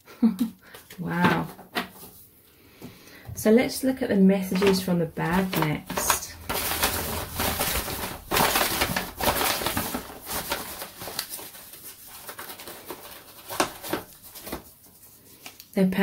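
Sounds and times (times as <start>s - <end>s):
paper bag rustling and crinkling: 3.9s - 15.6s.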